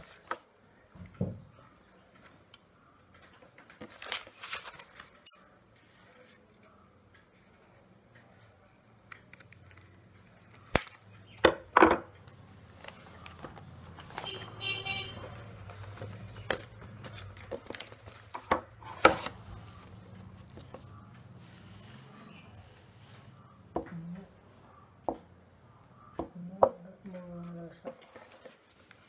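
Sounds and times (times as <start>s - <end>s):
stiff paper rustling: 3.7s - 5.2s, 12.6s - 23.4s, 27.9s - 29.0s.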